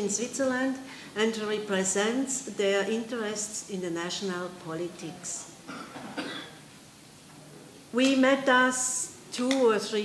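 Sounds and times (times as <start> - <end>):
person coughing: 5.7 - 6.6.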